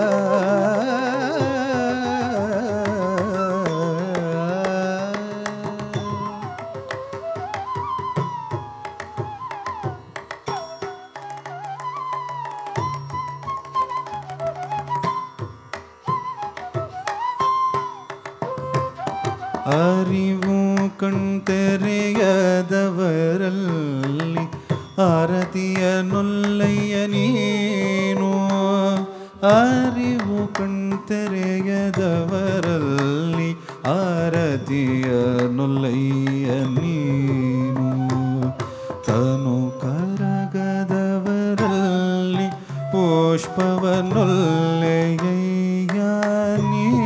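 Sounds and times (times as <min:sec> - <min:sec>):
person singing sliding phrases: 0:00.0 - 0:05.9.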